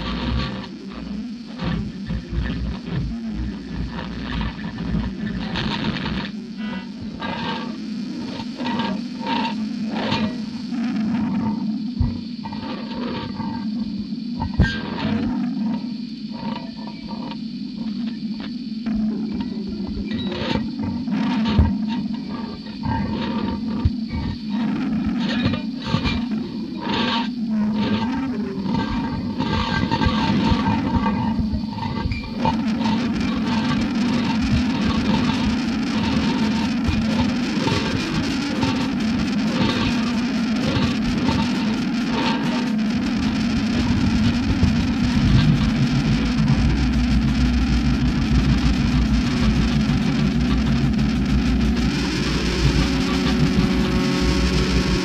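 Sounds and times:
low drone: 11.2s - 55.0s
clicks and crackles: 31.4s - 55.0s.

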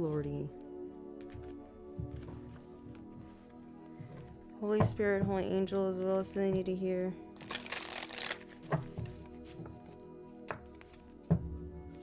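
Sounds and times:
cards being shuffled: 7.3s - 11.1s
light taps of cards: 10.4s - 12.0s.

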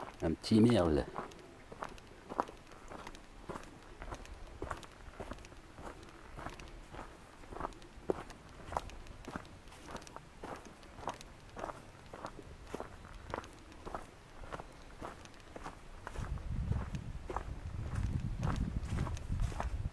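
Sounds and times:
footsteps on dry leaves: 0.0s - 19.9s.

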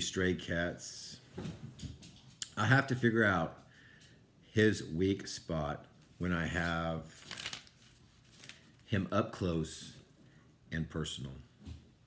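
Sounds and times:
book page turning: 6.4s - 8.9s.

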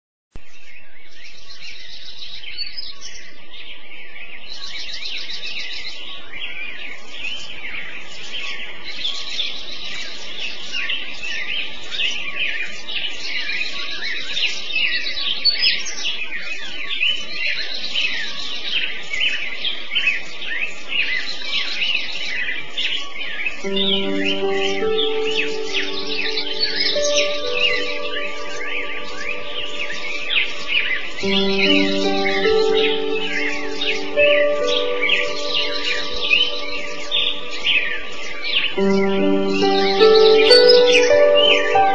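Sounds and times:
small birds chirping: 0.4s - 41.9s.

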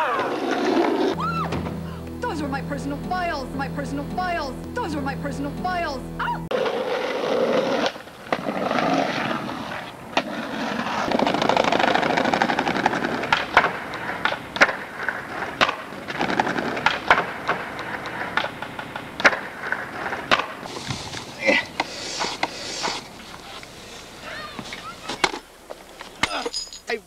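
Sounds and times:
skateboard wheels rumbling: 0.0s - 1.5s, 6.5s - 25.2s
skateboard clacking on ground: 6.6s - 20.7s.

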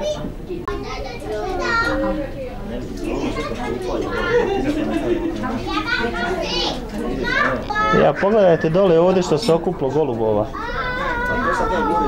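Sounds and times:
indistinct voices talking: 2.8s - 12.0s.

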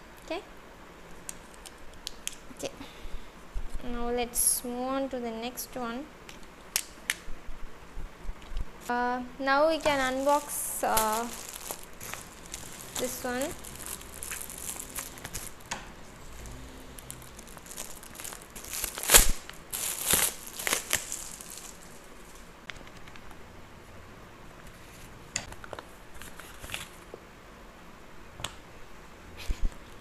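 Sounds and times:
gift-wrap paper crinkling and tearing: 9.7s - 22.5s
paper rustling: 9.7s - 22.5s.

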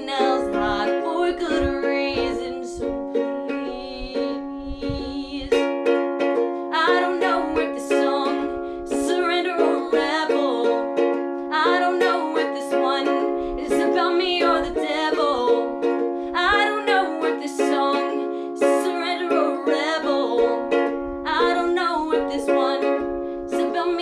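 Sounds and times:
person singing: 0.0s - 5.7s, 6.6s - 24.0s
ukulele strumming: 0.0s - 24.0s.

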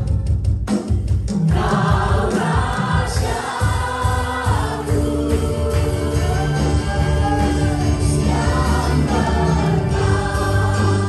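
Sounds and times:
band with drums: 0.0s - 11.0s
women singing worship song: 1.5s - 11.0s.

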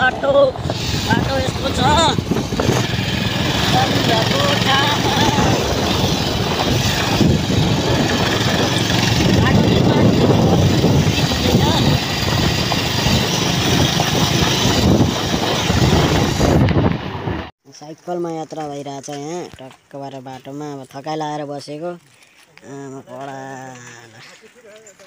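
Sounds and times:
motorcycle engine running: 0.0s - 17.5s
wind noise on microphone: 0.0s - 17.5s.

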